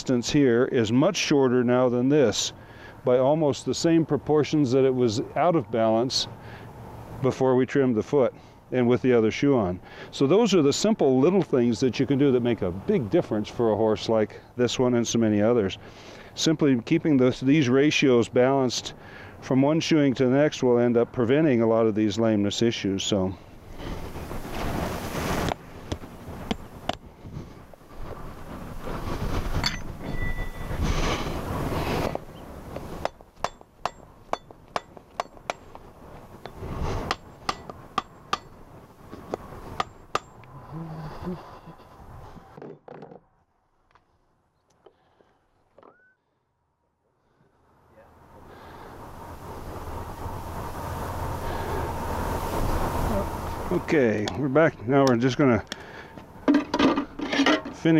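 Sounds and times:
steady background noise: 0:00.0 - 0:43.1
shuffling and handling noise: 0:23.8 - 0:33.0
hammer tapping horseshoe nails: 0:33.0 - 0:35.8, 0:37.1 - 0:38.6, 0:39.8 - 0:40.5.

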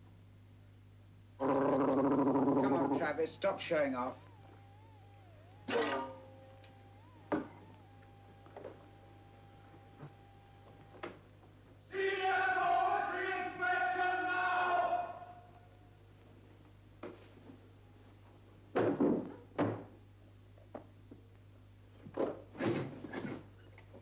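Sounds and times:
faint thin wavering tone: 0:02.6 - 0:10.8
singing voices: 0:11.9 - 0:15.6.

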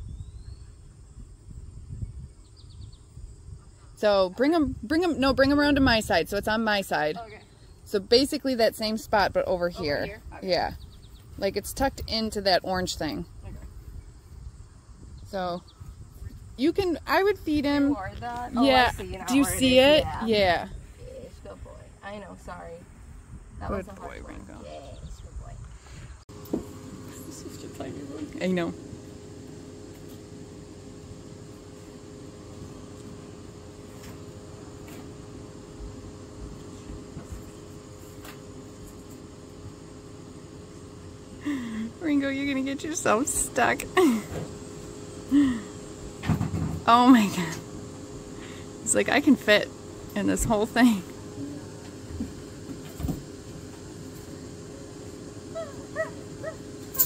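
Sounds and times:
faint high whine: 0:00.0 - 0:57.0
mechanical hum: 0:00.0 - 0:57.0
dog whining: 0:55.5 - 0:57.0.

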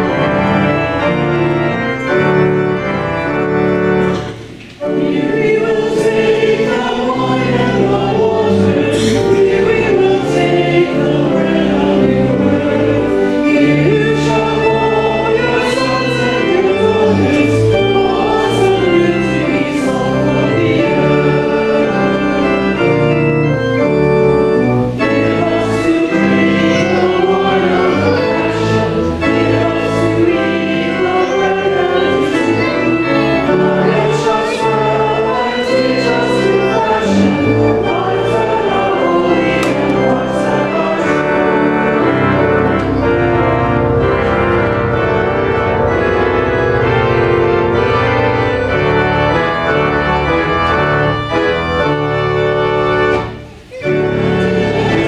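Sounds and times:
congregation singing a hymn: 0:00.0 - 0:55.0
organ chords: 0:00.0 - 0:55.0.

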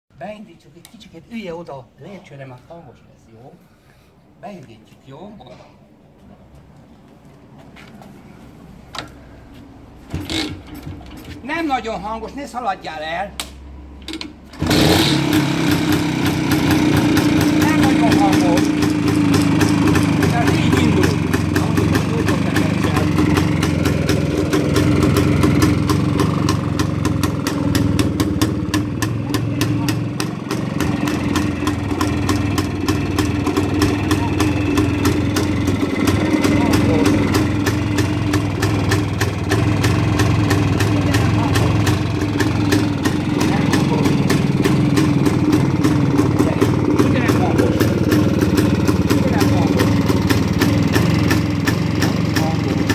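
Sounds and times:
motorcycle engine starting and idling: 0:09.9 - 0:12.3, 0:13.0 - 0:52.9.

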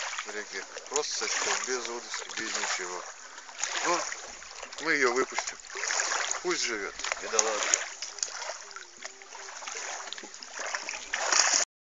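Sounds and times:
water sloshing and splashing: 0:00.0 - 0:11.7.

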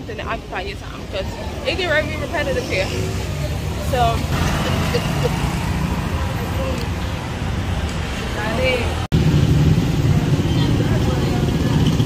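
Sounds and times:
motorcycles and cars passing: 0:00.0 - 0:12.0.

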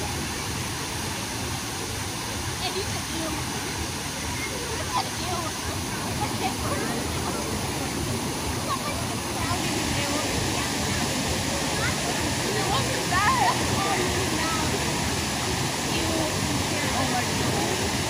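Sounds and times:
voices of swimmers: 0:00.0 - 0:18.0
water pouring from waterfall: 0:00.0 - 0:18.0.

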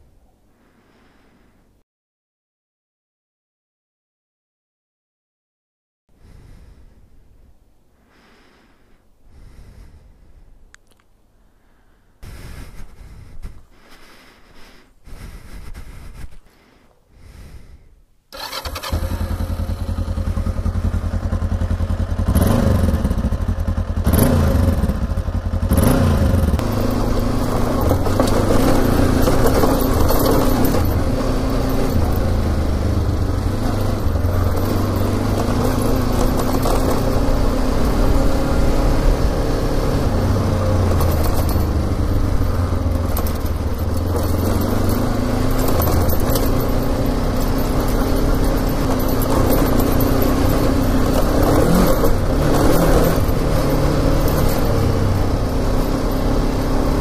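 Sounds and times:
motorcycle engine running: 0:18.4 - 0:57.0.

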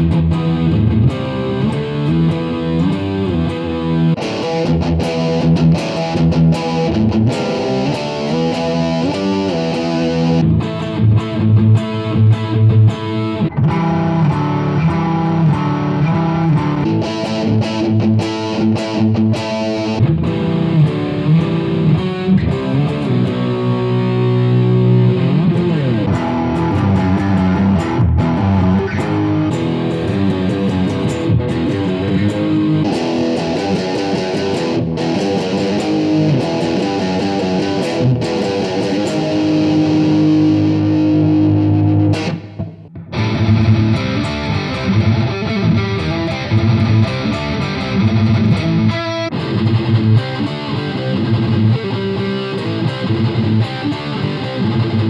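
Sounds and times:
distorted electric guitar riff: 0:00.0 - 0:55.0.

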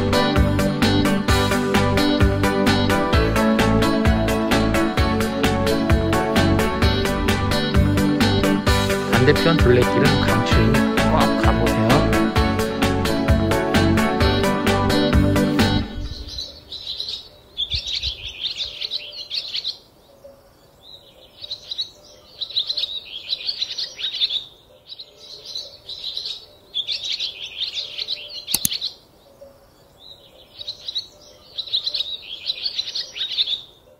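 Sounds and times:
background music: 0:00.0 - 0:16.5
songbird chirping: 0:01.9 - 0:12.6, 0:15.0 - 0:33.9
sharp click: 0:28.5 - 0:28.8.

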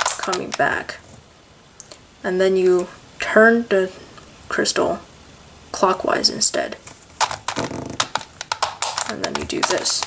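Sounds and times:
plastic puzzle clicking: 0:00.0 - 0:00.8, 0:07.2 - 0:10.0.

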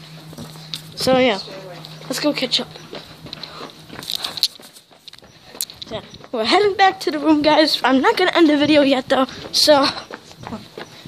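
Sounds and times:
footsteps on concrete: 0:00.0 - 0:11.0.

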